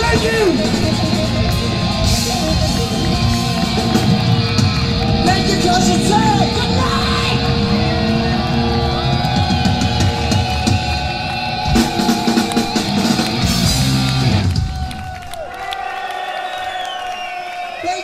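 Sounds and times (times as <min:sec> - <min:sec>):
distorted electric guitars: 0:00.0 - 0:15.0
drum kit: 0:00.0 - 0:15.1.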